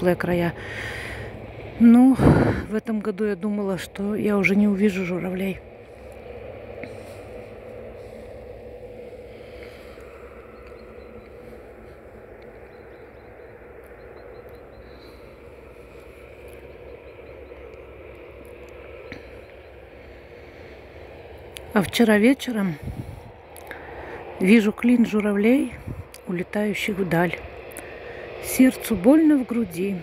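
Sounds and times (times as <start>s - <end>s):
distant road traffic hum: 0.0s - 30.0s.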